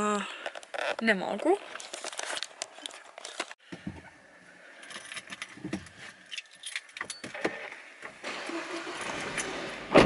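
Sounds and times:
car keys jangling: 4.8 - 5.5
car engine starting: 7.4 - 10.0
car starter cranking: 8.2 - 10.0.

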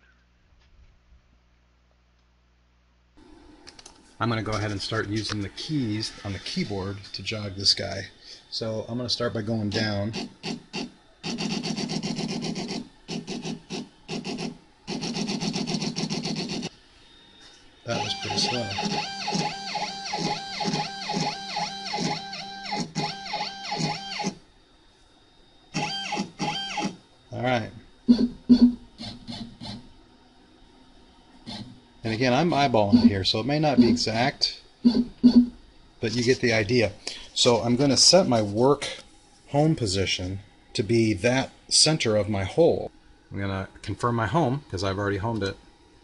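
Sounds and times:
stepper motors buzzing: 8.6 - 16.8, 17.9 - 24.4, 25.7 - 27.0.

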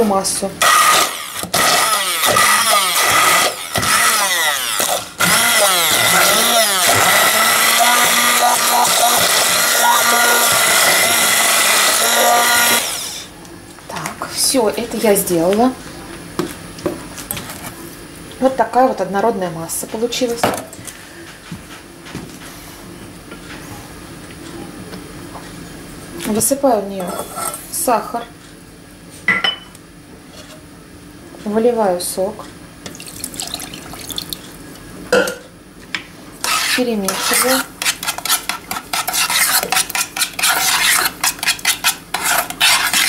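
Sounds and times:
juice pouring into a pot: 32.9 - 34.6.

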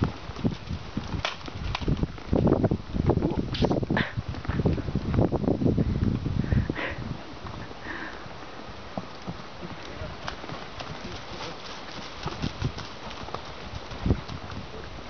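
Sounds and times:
hoofbeats on dirt: 0.0 - 15.0.

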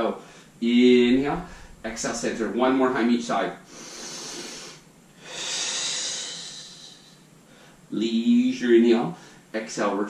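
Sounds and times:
man breathing: 0.2 - 2.5, 3.7 - 7.9.

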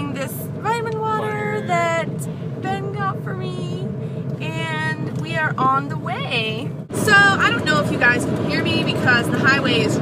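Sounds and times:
highway road noise in car: 0.0 - 10.0
woman's voice: 0.0 - 10.0.

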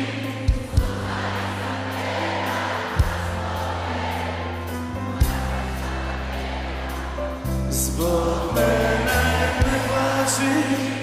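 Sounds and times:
rock band music: 0.0 - 11.0.

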